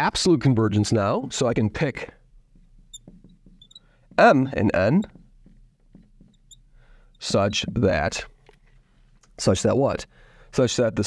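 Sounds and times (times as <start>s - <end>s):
marker pen squeaking: 2.5s - 8.6s.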